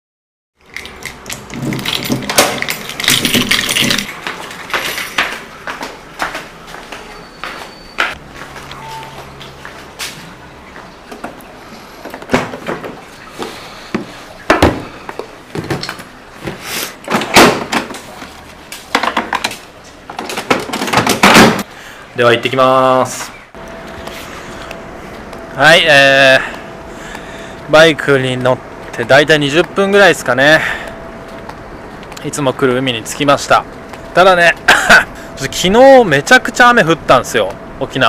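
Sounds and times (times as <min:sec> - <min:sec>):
keys jingling: 0:00.8 - 0:05.3.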